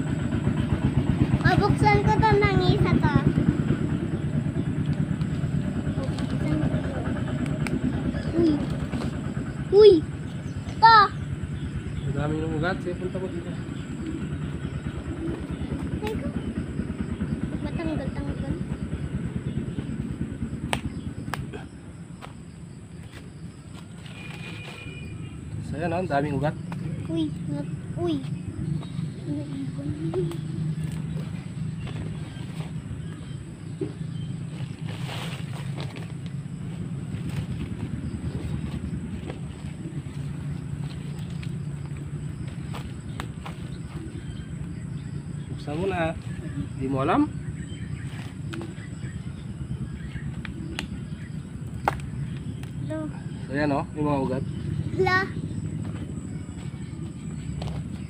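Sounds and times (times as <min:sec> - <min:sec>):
engine running with low pulse: 0:00.0 - 0:58.0
footsteps on leaf litter: 0:23.0 - 0:25.2, 0:28.2 - 0:44.2.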